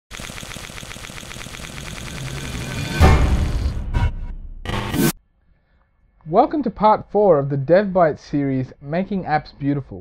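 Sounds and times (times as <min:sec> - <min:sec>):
fast electronic ticking pulse: 0:00.1 - 0:03.6.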